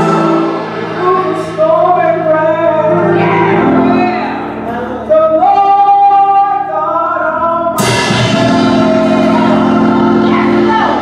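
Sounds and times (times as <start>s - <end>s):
woman singing gospel song: 0.0s - 4.5s, 5.1s - 11.0s.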